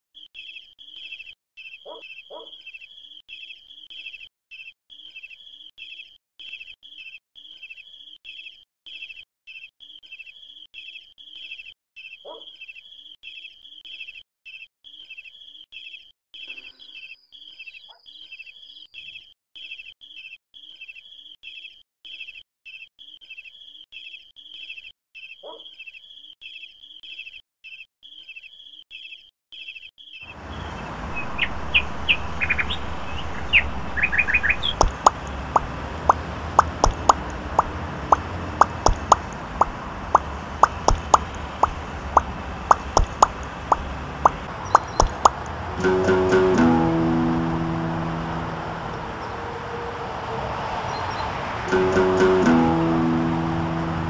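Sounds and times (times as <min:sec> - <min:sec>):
birds chirping: 0:00.3 - 0:22.4, 0:23.0 - 0:54.0.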